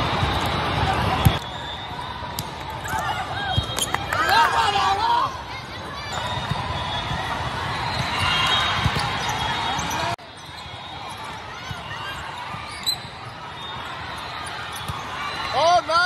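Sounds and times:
crowd chatter: 0.0 - 16.0.

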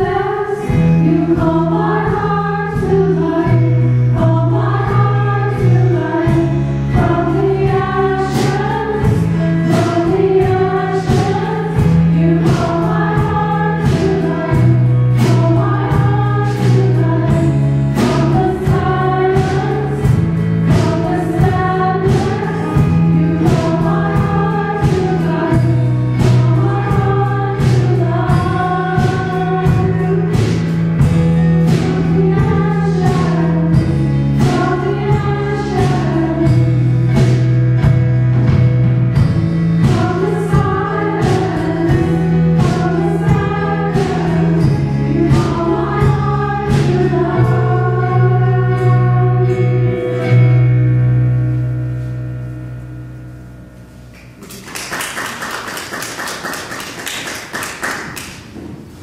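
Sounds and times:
choir singing: 0.0 - 30.3, 39.8 - 49.6
low bass notes: 0.0 - 54.4
steady strumming beat: 0.0 - 54.4
guitar accompaniment: 0.0 - 59.0.

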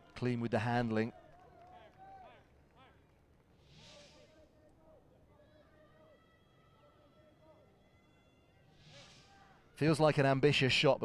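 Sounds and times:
distant stadium voices: 0.0 - 10.8
soft hissy swells: 3.6 - 4.6, 8.6 - 10.2.

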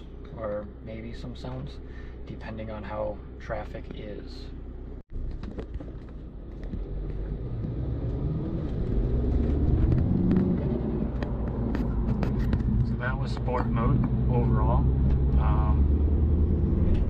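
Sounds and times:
car engine accelerating: 4.6 - 17.0.

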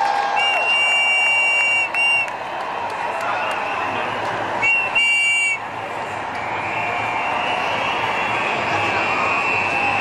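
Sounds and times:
crowd noise: 0.0 - 10.0
shrill whistle blown: 0.3 - 2.3, 4.6 - 5.6, 6.4 - 10.0.

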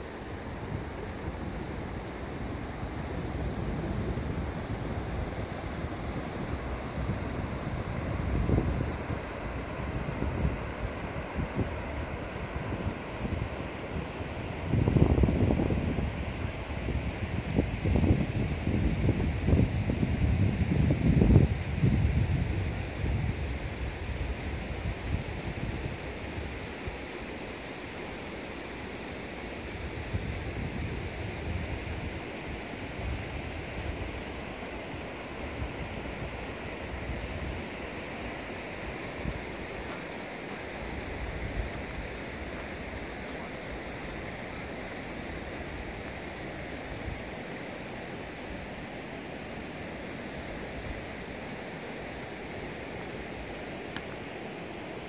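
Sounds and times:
wind buffeting microphone: 0.0 - 27.0
river rushing over stones: 31.0 - 55.0.

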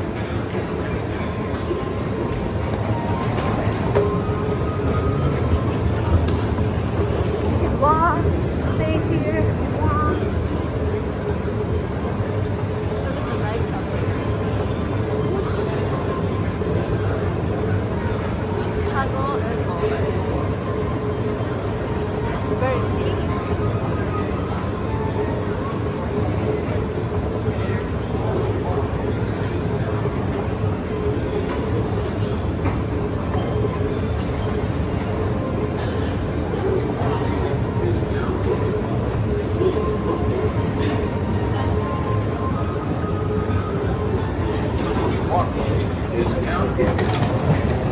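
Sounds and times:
murmur of distant voices: 0.0 - 47.9.

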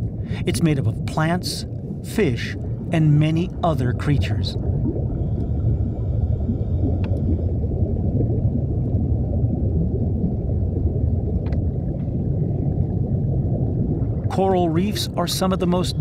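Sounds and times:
low underwater rumble: 0.0 - 16.0.

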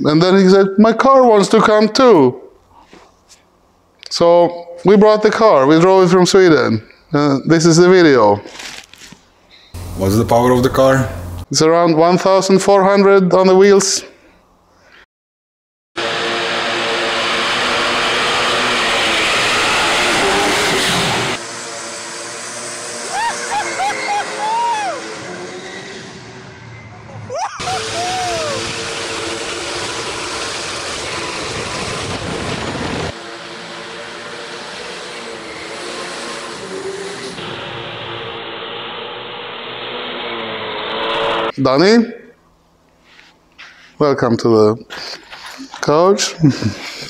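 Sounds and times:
car engine revving hard: 16.0 - 21.4, 27.6 - 41.5.

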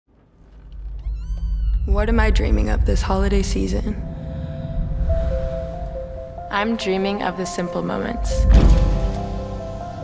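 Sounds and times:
low rumble: 0.2 - 10.0
piano squeaking: 0.6 - 2.8.

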